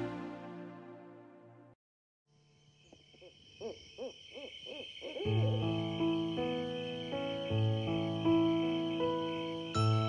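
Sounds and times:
soft sustained music chords: 0.0s - 1.8s, 5.4s - 10.0s
owl hooting: 2.8s - 5.8s.

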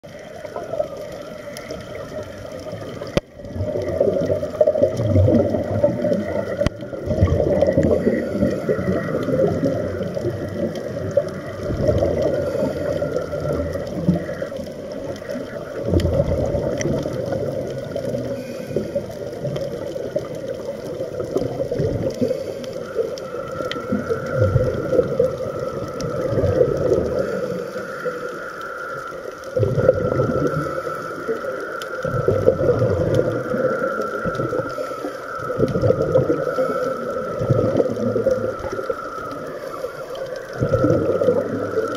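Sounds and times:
faint steady hum: 0.0s - 41.9s
muffled underwater rushing: 0.0s - 41.9s.

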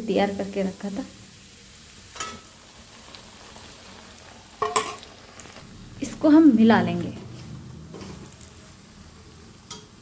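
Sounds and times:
light sizzle: 0.0s - 10.0s.

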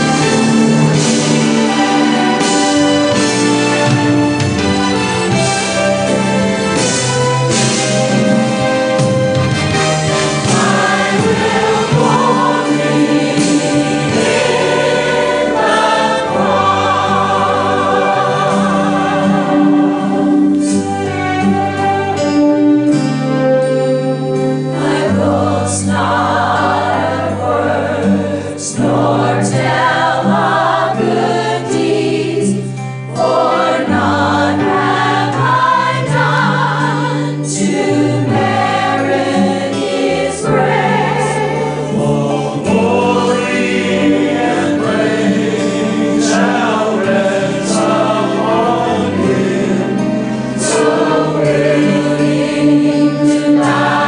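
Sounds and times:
church choir singing a hymn: 0.0s - 54.0s
instrumental accompaniment: 0.0s - 54.0s.

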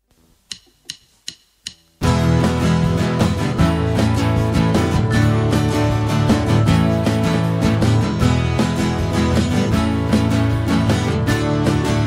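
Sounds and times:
count-in clicks: 0.5s - 1.9s.

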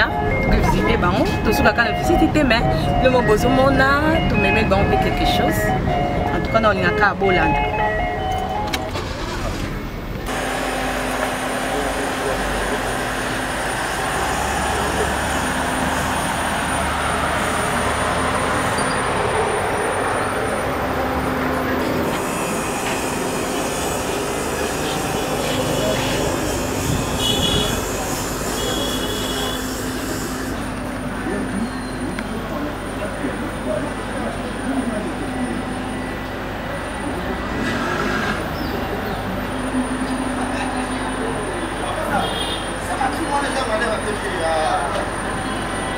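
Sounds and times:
indistinct voices: 0.0s - 45.9s
traffic rumble: 0.0s - 45.9s.

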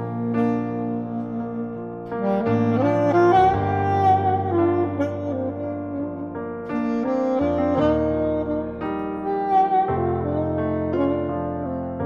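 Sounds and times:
saxophone melody: 0.0s - 12.0s.

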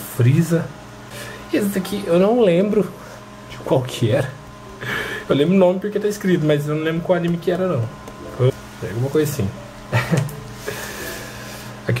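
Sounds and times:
man speaking: 0.0s - 0.8s, 1.5s - 4.4s, 5.3s - 9.6s.

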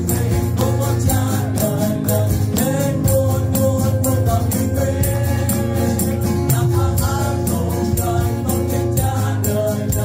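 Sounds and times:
acoustic guitar: 0.0s - 10.0s
keyboard: 0.0s - 10.0s
men singing into microphones: 0.0s - 10.0s.

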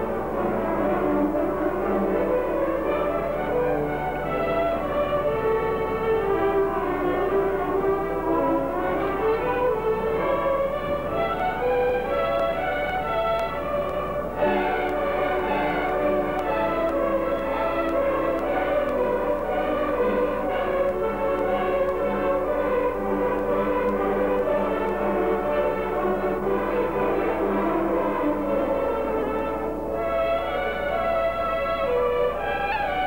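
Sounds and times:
violin ensemble playing: 0.0s - 33.0s.

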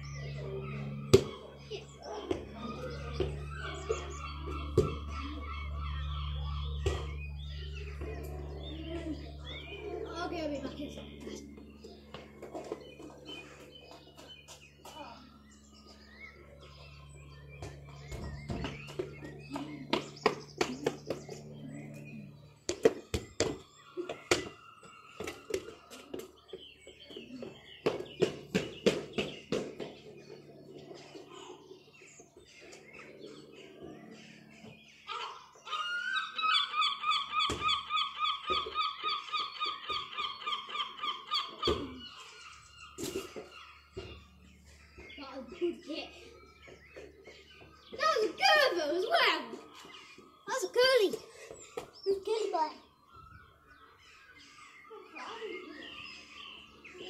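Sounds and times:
low steady hum: 0.0s - 57.0s
football kicked and bouncing on tarmac: 4.7s - 5.1s, 17.6s - 21.2s, 22.7s - 30.3s, 37.4s - 37.8s
running footsteps: 22.6s - 30.6s.

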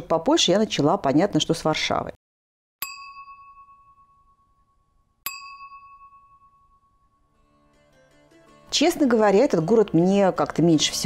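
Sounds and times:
bell-like chime dings: 2.8s - 7.4s.

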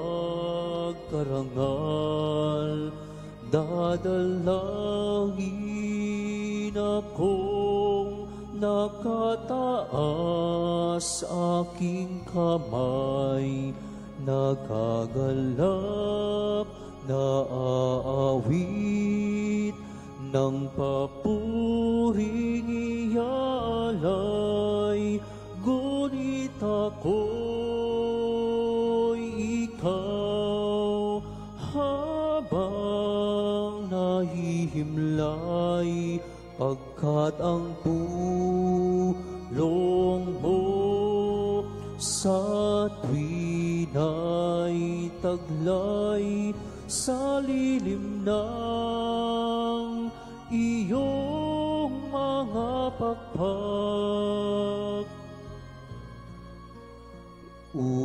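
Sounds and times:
slow sung hymn: 0.0s - 58.0s
sustained accompanying chords: 0.0s - 58.0s
voice singing long notes: 57.7s - 58.0s.

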